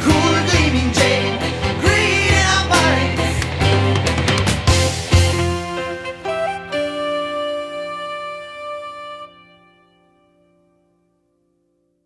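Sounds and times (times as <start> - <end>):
progressive rock held chord: 0.0 - 8.0.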